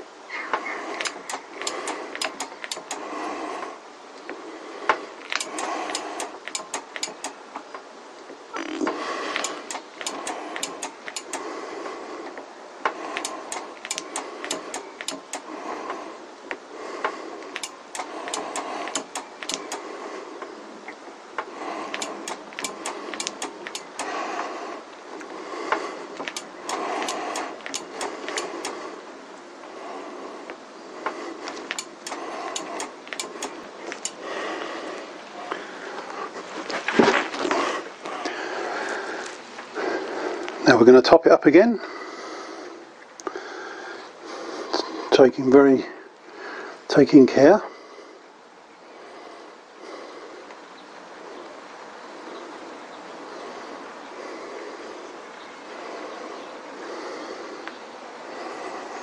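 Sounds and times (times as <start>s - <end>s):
steady noise: 0.0s - 50.4s
brake lever clicks: 1.0s - 3.0s, 5.3s - 7.4s, 8.6s - 11.4s, 13.2s - 15.5s, 17.6s - 19.8s, 21.9s - 24.1s, 26.2s - 28.8s, 31.6s - 34.2s.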